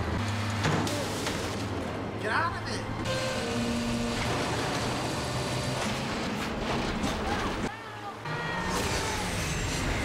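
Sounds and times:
garbage truck engine running: 2.8 - 10.0.

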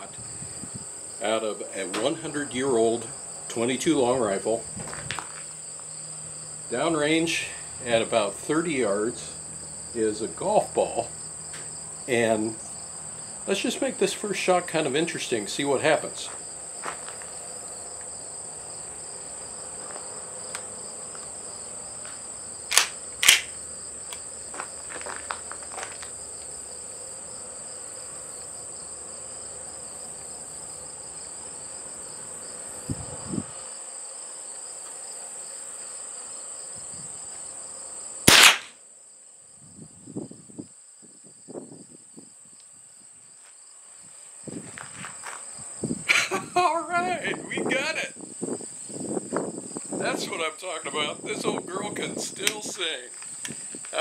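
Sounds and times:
high insect chirring: 0.0 - 54.0
rifle shot: 22.7 - 23.5, 38.2 - 38.8
sharp clicks: 22.7 - 23.6, 38.3 - 38.8, 52.4 - 52.6.

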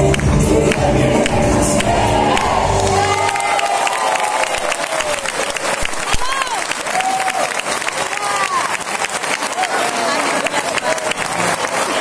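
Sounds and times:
music: 0.0 - 3.4
crowd clapping and cheering: 0.0 - 12.0
crowd shouts: 1.9 - 8.9.

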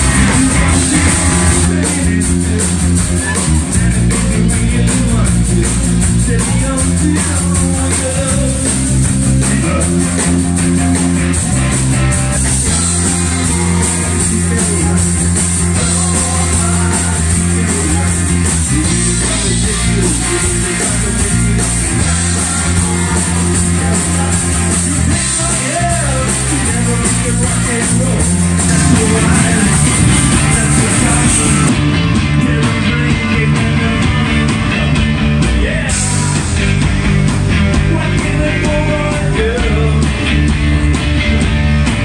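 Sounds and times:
person singing: 0.0 - 35.0, 37.6 - 40.5
bass guitar: 0.0 - 42.0
drum kit: 0.0 - 42.0
electric guitars: 0.0 - 42.0.

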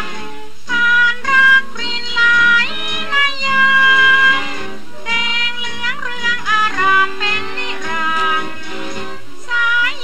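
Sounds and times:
instrumental accompaniment: 0.0 - 10.0
woman singing: 0.7 - 8.7, 9.4 - 10.0.

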